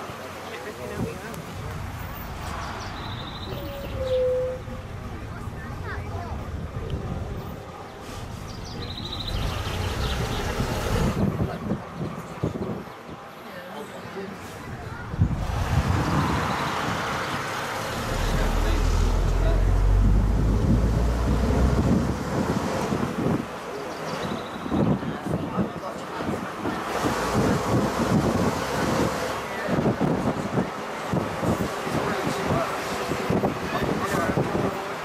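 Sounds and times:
bus engine and road noise: 0.0 - 35.0
wind buffeting microphone: 0.9 - 13.2, 14.6 - 23.7, 24.7 - 34.8.

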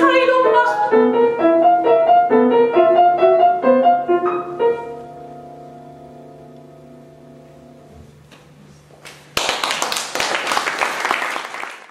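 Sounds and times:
piano notes: 0.0 - 8.6
audience applause: 9.4 - 11.9.

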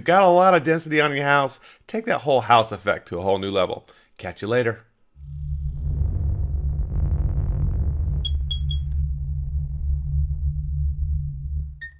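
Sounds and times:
deep synth drone: 5.2 - 11.9
rising whoosh: 5.2 - 11.9.

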